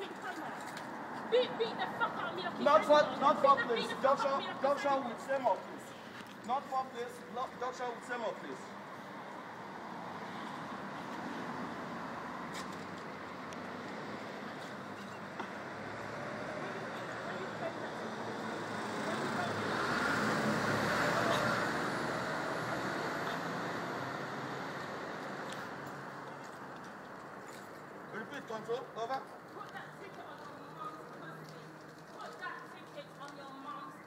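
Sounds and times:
street noise: 0.0 - 34.0
vehicle passing close by: 15.6 - 26.2.

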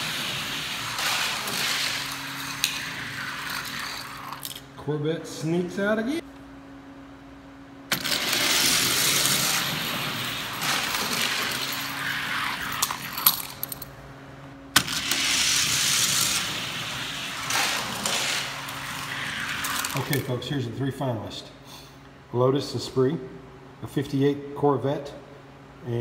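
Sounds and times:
toy cars rolling down plastic track: 0.0 - 4.6, 7.9 - 13.7, 14.8 - 20.3.

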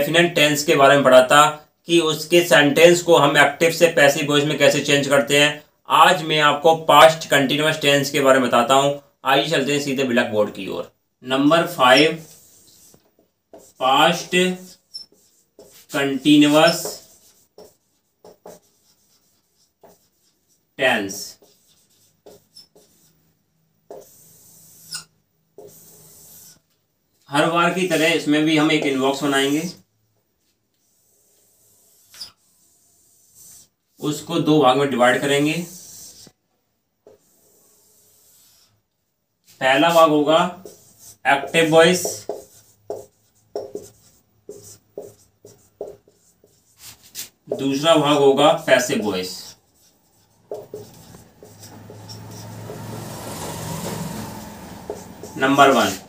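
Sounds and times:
marker writing on whiteboard: 11.4 - 36.4, 37.0 - 38.8, 39.4 - 56.0.

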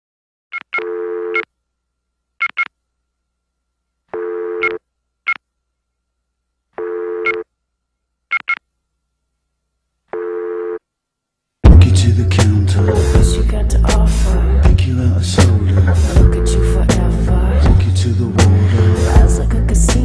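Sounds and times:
buzzy telephone tone: 0.8 - 1.5, 4.2 - 5.4, 6.8 - 7.5, 10.1 - 10.9.

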